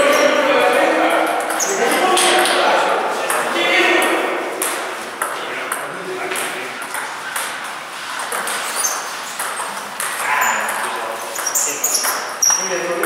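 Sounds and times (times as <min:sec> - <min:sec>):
voices in background: 0:00.0 - 0:07.4, 0:10.0 - 0:13.0
table tennis ball clicks: 0:04.6 - 0:12.6.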